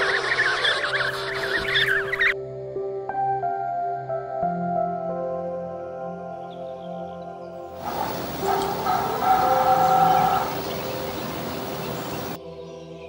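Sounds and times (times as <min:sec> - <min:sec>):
soft piano music: 0:01.6 - 0:12.4
heron harsh call: 0:07.8 - 0:12.4.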